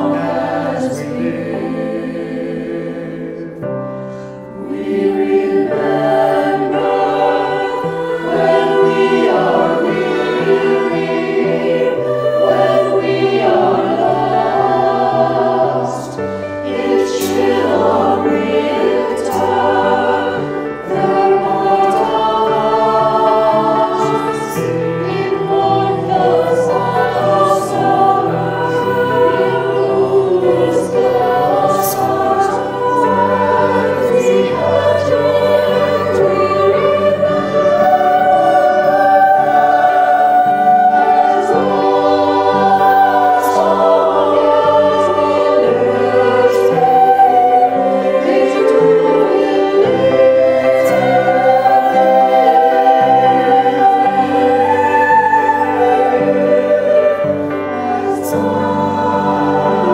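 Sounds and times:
voices singing slow song: 0.0 - 59.9.

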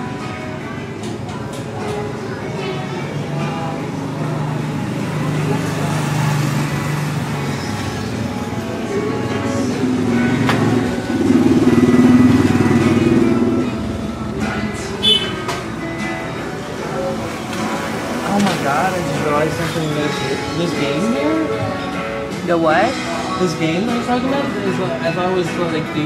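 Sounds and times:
pop music with singing: 0.0 - 26.0
motorcycle engine running: 2.6 - 21.6.

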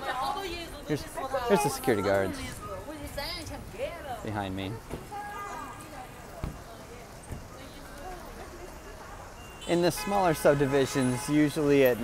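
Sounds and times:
outdoor street ambience: 0.0 - 12.0
people talking in background: 0.0 - 12.0.

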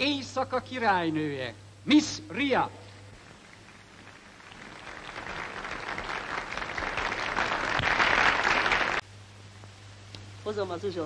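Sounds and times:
audience applauding: 3.3 - 9.0.

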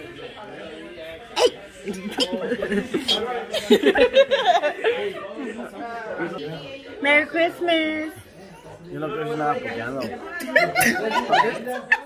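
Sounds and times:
background talk in a room: 0.0 - 12.0.

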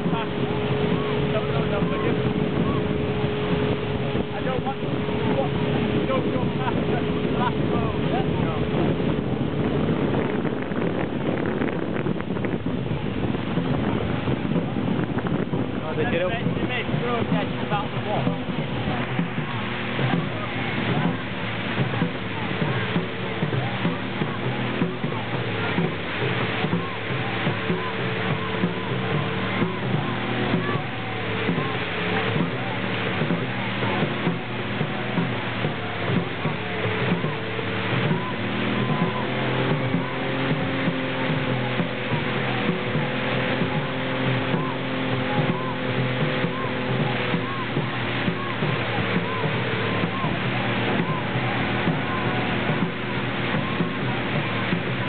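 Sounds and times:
engine-like hum: 0.0 - 55.0
voices: 0.0 - 55.0
water noise: 0.0 - 55.0
wind noise: 0.0 - 55.0.

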